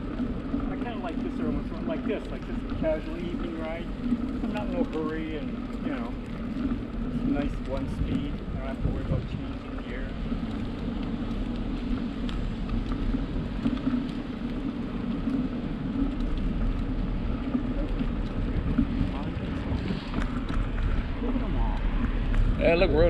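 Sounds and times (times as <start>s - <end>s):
bicycle tyres on pavement: 0.0s - 23.0s
wind on microphone: 0.0s - 23.0s.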